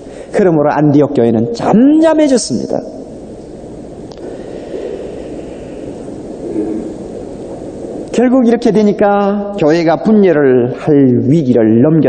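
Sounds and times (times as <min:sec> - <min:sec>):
recording rumble and hiss: 0:00.0 - 0:12.0.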